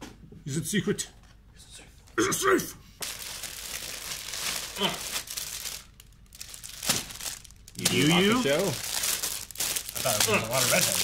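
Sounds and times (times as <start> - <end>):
plastic mailer bag crinkling: 3.0 - 11.0.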